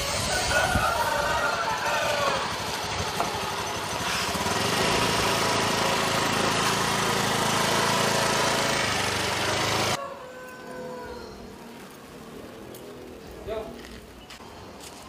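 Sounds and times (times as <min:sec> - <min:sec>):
motorcycle engine running: 0:01.3 - 0:10.0.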